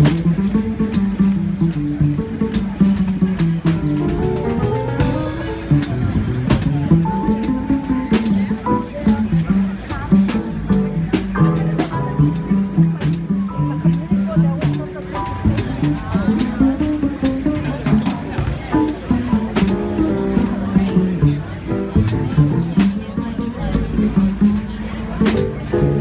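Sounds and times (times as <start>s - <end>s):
piano chords: 0.0s - 26.0s
plucked double bass: 0.0s - 26.0s.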